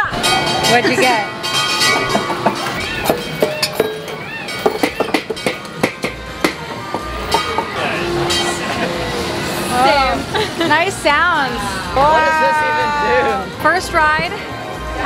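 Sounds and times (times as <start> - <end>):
bamboo poles clattering: 0.2 - 6.7
voices: 6.6 - 15.0.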